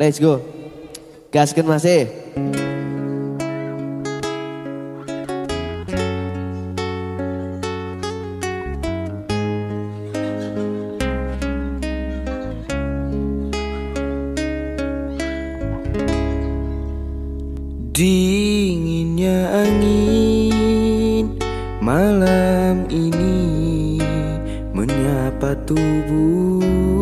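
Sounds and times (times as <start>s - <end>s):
acoustic guitar plucked notes: 2.2s - 27.0s
bass guitar: 2.4s - 27.0s
deeper bass: 8.0s - 9.9s, 11.0s - 27.0s.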